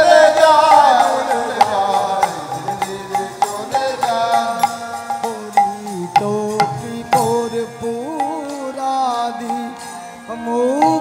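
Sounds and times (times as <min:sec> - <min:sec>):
hand cymbals struck in steady beat: 0:00.0 - 0:11.0
harmonium melody in held notes: 0:00.0 - 0:11.0.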